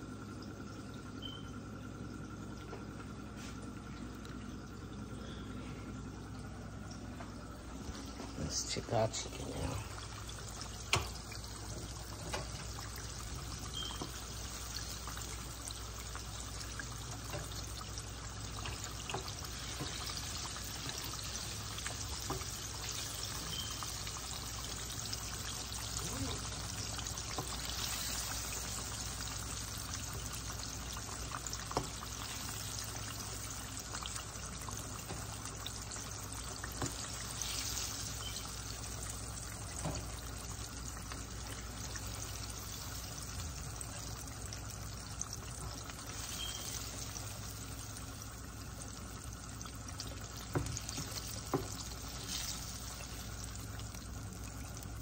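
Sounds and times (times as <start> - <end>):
oil bubbling and sizzling: 0.0 - 55.0.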